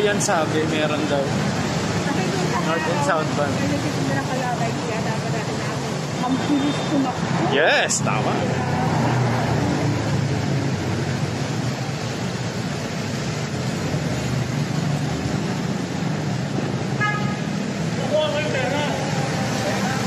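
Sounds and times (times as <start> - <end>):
road traffic noise: 0.0 - 20.0
car horn toot: 17.0 - 17.5.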